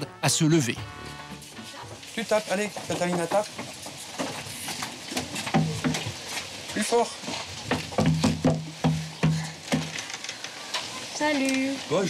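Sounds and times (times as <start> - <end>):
soft knocking on glass door: 7.7 - 10.1.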